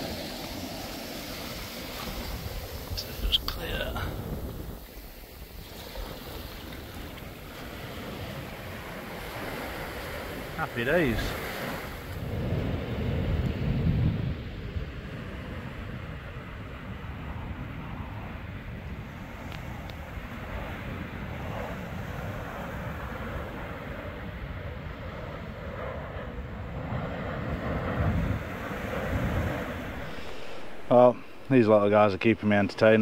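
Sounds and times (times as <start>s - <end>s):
waves washing up beach: 0.0s - 33.0s
wind buffeting microphone: 0.0s - 33.0s.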